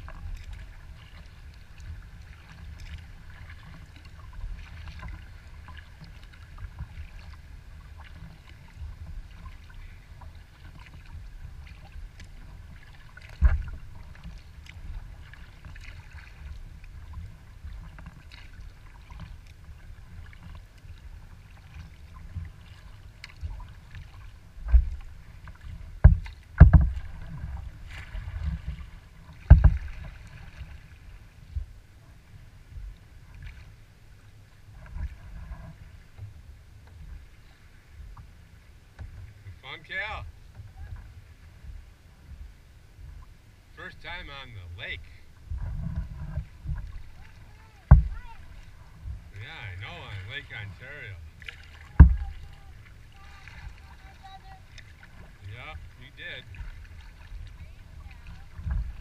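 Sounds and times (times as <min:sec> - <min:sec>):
water lapping against a kayak: 0:00.0 - 0:59.0
water slapping the hull: 0:00.0 - 0:59.0.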